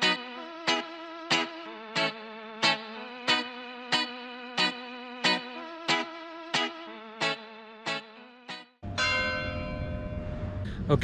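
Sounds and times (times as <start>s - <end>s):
plucked guitar-like music: 0.0s - 9.4s
church bell stroke: 8.8s - 10.8s
wind: 8.8s - 11.0s.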